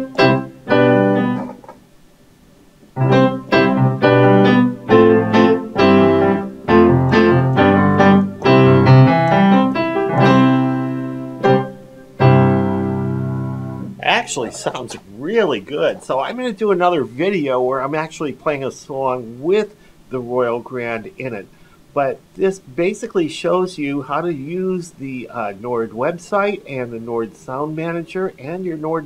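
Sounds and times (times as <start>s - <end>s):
piano chords: 0.0s - 1.7s, 3.0s - 17.0s.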